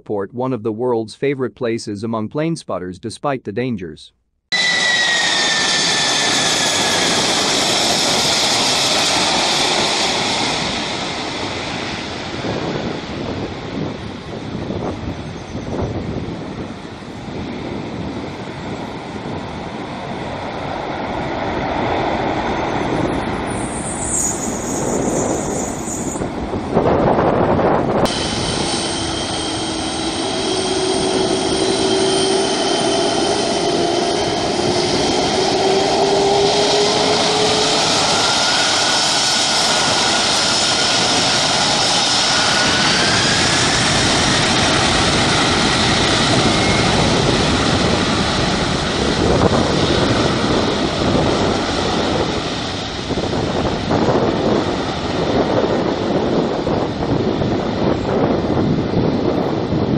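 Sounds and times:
rising engine whine: 4.5s - 59.2s
jet engines roaring: 4.5s - 59.9s.

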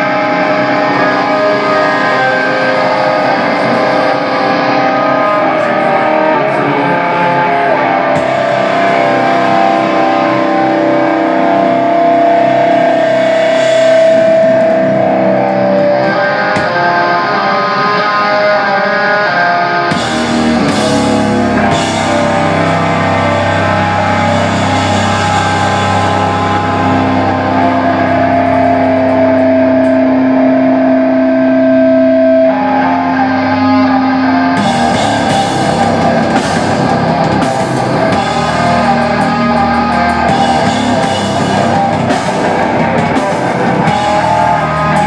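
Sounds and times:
distorted electric guitar chord: 0.0s - 45.0s
sustained high tones: 19.9s - 45.0s.

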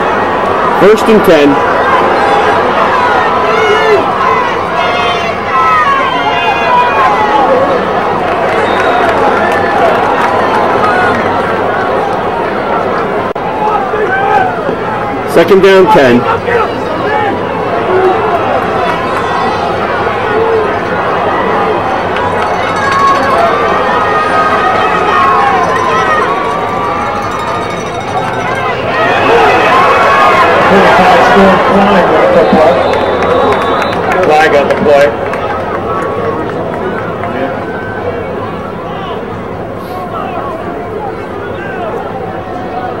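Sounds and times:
stadium crowd cheering: 0.0s - 43.0s
high whistle: 32.3s - 34.2s.

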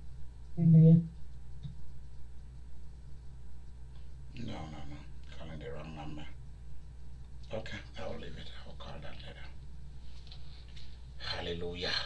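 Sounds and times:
steady low hum: 0.0s - 12.0s
man whispering: 11.2s - 12.0s.

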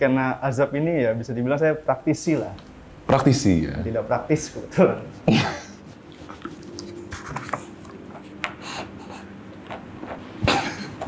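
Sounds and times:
paper rubbing and rustling: 5.8s - 8.5s.

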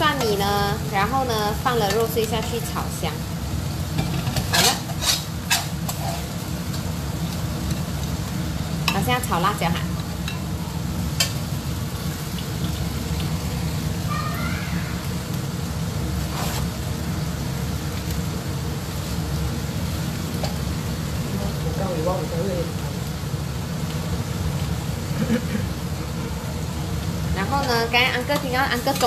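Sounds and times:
prawns sizzling in hot oil: 0.0s - 29.0s.

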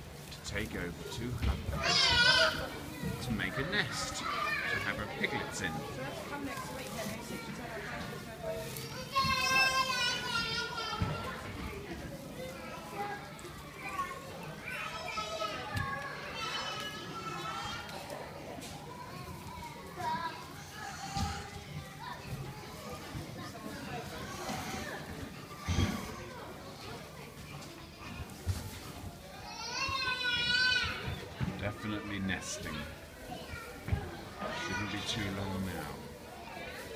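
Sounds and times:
background chatter: 0.0s - 36.9s
children calling: 0.8s - 11.8s, 12.4s - 28.4s, 29.2s - 36.9s
man speaking: 3.2s - 5.8s, 31.6s - 32.9s, 34.7s - 36.0s.

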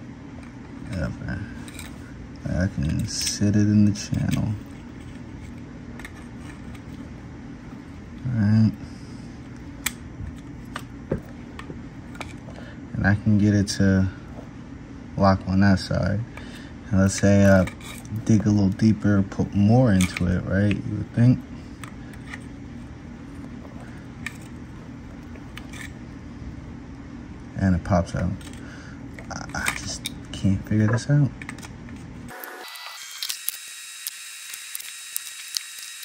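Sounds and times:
steady low hum: 0.0s - 32.4s.

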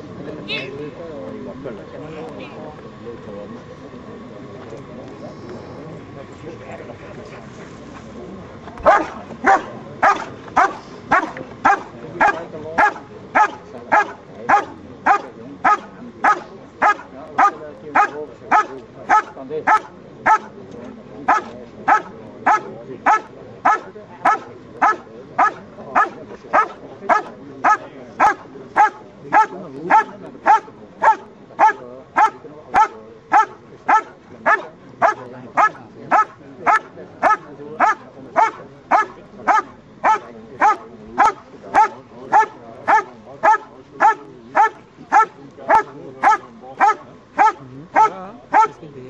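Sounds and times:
dog barking rhythmically: 8.8s - 20.5s, 21.3s - 48.8s.

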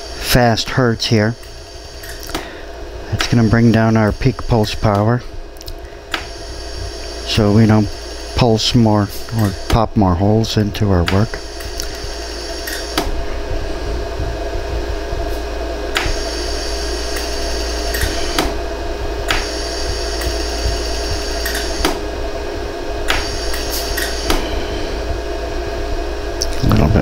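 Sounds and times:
laser welder humming: 0.0s - 27.0s
laser welder sharp clicks: 1.4s - 2.5s, 3.2s - 3.5s, 4.6s - 6.5s, 9.2s - 9.8s, 11.0s - 13.2s, 15.9s - 18.6s, 19.3s - 22.1s, 23.0s - 24.5s.

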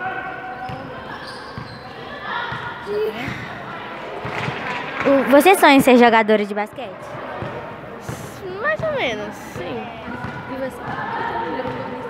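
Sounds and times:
murmur of voices: 0.0s - 12.0s
basketballs bouncing on court: 6.6s - 12.0s.

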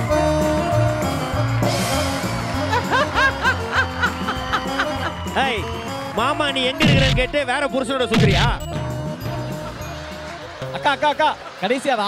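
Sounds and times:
background music: 0.0s - 12.0s
giggling laughs: 2.7s - 5.2s.

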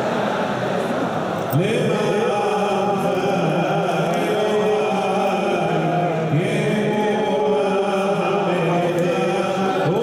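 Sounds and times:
crowd chanting prayers: 0.0s - 10.0s.

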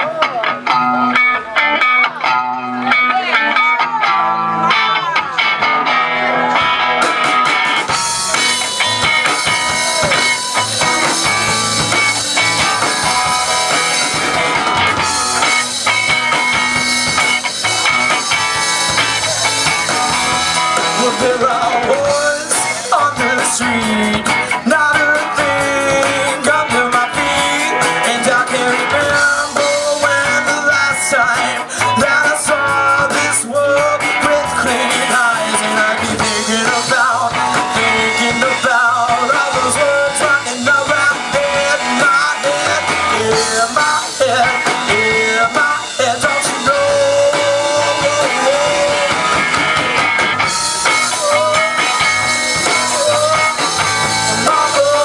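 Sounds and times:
live rock band playing: 0.0s - 55.0s.

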